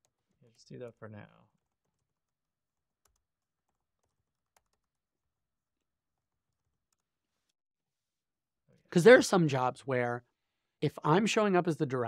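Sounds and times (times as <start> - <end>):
faint keyboard clicks: 3.0 - 5.0.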